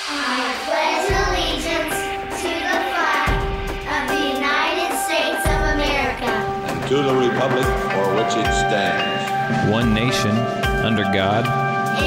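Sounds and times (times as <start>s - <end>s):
children reciting in unison: 0.0s - 6.7s
background music: 0.0s - 12.0s
deep bass note: 9.4s - 11.2s.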